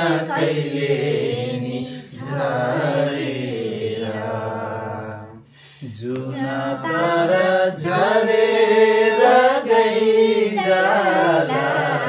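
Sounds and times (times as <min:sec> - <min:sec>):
group singing unaccompanied: 0:00.0 - 0:12.0.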